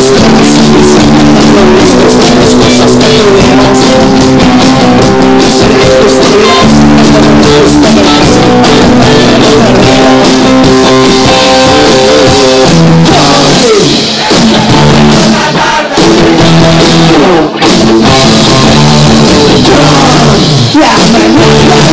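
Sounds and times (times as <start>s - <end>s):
drum kit: 0.0s - 21.9s
electric bass: 0.0s - 21.9s
electric guitars: 0.0s - 21.9s.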